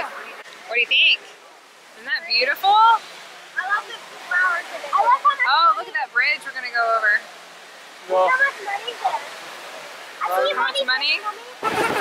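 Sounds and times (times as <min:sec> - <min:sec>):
people talking: 0:00.0 - 0:01.2, 0:02.0 - 0:03.0, 0:03.6 - 0:07.2, 0:08.1 - 0:09.4, 0:10.2 - 0:12.0
water running down a waterfall: 0:00.0 - 0:12.0.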